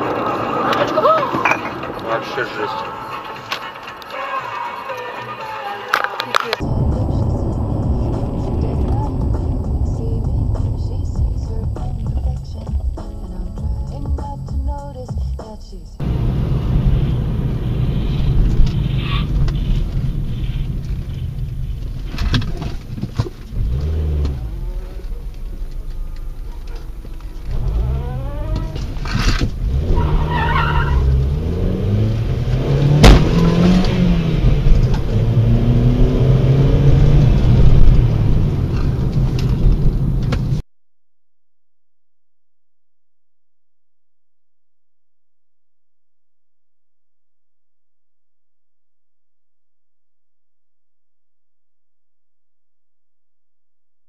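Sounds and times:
car engine and road noise: 0.0 - 40.6.

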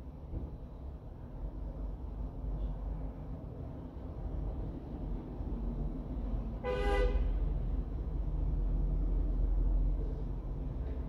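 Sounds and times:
vehicle horn toot: 6.6 - 7.3.

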